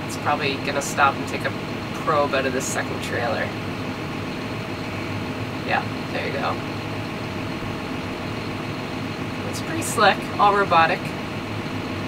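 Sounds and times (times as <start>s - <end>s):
tractor engine idling: 0.0s - 12.0s.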